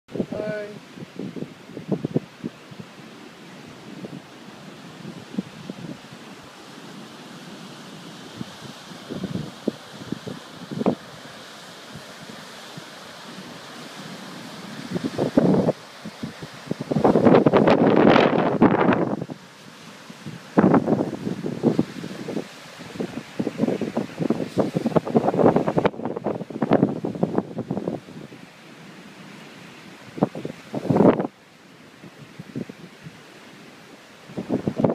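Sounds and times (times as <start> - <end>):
wind buffeting microphone: 0.1 - 7.0, 7.9 - 28.4, 30.0 - 31.4, 34.2 - 34.9
surf breaking on beach: 0.1 - 34.9.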